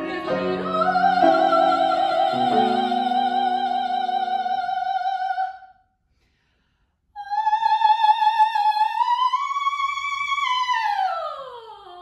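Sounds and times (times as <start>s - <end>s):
operatic soprano singing: 0.0s - 5.8s, 7.2s - 12.0s.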